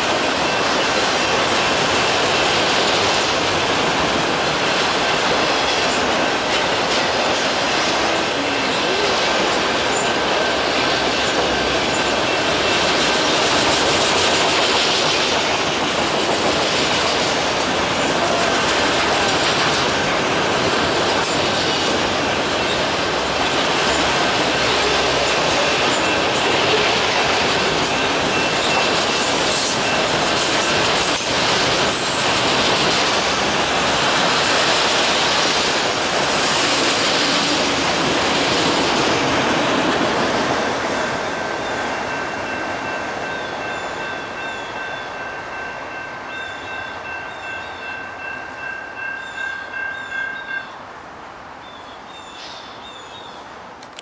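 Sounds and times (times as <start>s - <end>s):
train wheels on rail: 0.0s - 50.8s, 51.9s - 54.0s.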